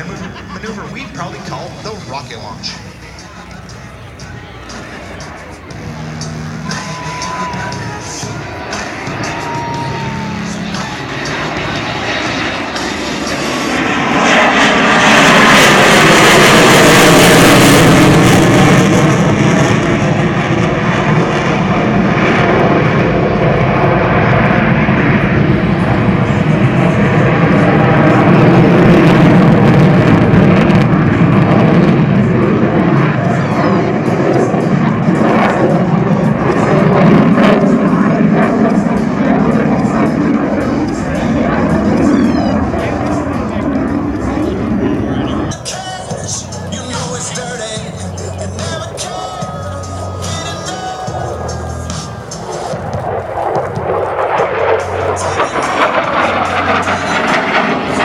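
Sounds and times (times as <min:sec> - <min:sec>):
jet engine roar: 0:00.0 - 0:58.0.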